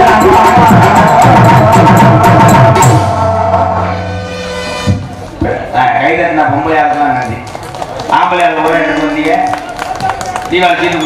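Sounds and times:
man speaking over loudspeakers: 5.4s - 11.0s.

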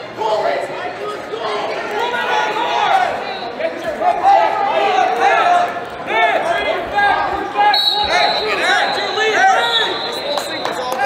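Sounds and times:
voices in gym hall: 0.0s - 11.0s.

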